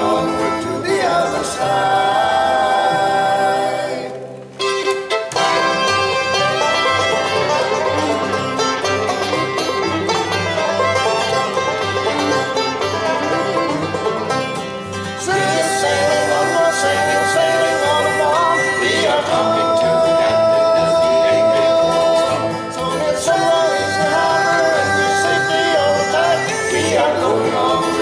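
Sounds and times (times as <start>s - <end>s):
vocal harmony singing: 0.0s - 4.6s, 5.3s - 7.9s, 15.0s - 28.0s
acoustic guitar: 0.0s - 28.0s
banjo: 0.0s - 28.0s
fiddle melody: 0.0s - 28.0s
upright bass: 0.0s - 28.0s.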